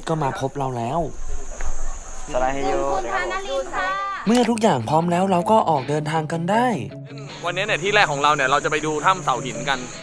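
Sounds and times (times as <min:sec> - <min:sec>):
insects chirring: 0:00.0 - 0:10.0
person speaking: 0:02.4 - 0:06.9.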